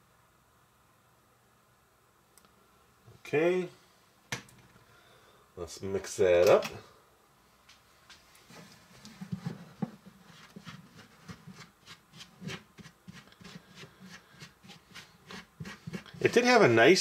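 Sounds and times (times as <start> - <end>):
spoon scraping a bowl: 10.3 - 16.4.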